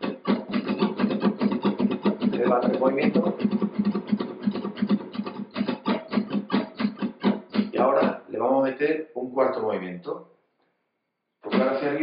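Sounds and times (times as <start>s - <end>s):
fast flamenco guitar strums: 0.0s - 8.3s, 11.4s - 12.0s.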